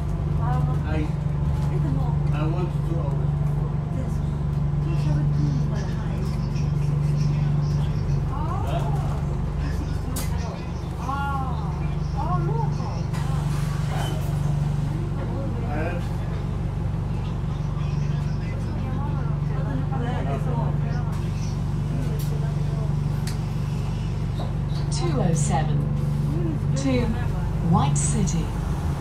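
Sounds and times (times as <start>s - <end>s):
bus drivetrain hum: 0.0s - 29.0s
indistinct passenger voices: 0.0s - 29.0s.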